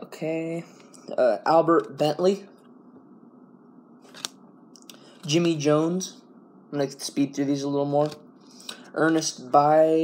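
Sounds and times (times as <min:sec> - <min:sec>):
faint room hiss: 0:00.0 - 0:10.0
cards being shuffled by hand: 0:04.0 - 0:04.4, 0:08.0 - 0:09.4
card snapping against stack: 0:04.1 - 0:04.9.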